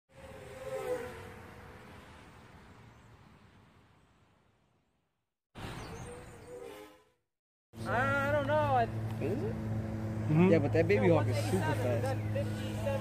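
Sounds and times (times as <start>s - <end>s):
quadcopter motors buzzing: 0.1s - 2.4s, 7.8s - 13.0s.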